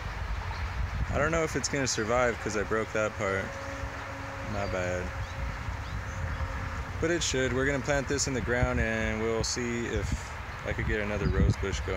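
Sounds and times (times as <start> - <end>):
irregular low rumble: 2.3 - 9.2.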